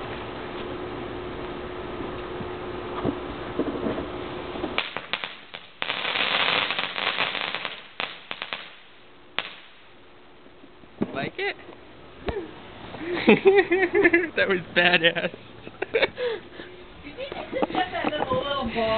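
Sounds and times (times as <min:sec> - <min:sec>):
burning metal crackling: 0:00.0 - 0:18.9
scattered pops: 0:04.6 - 0:08.8
loud fizzing hiss: 0:04.8 - 0:09.9.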